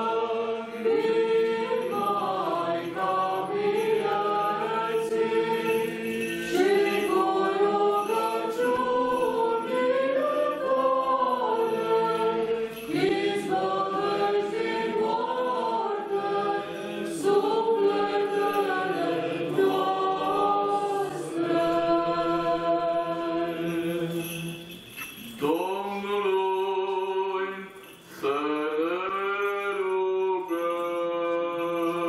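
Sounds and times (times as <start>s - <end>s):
group chanting: 0.0s - 24.2s.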